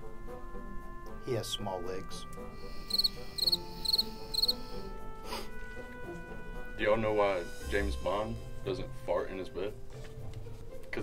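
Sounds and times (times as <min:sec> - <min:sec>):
cricket chirping: 0:02.8 - 0:04.6.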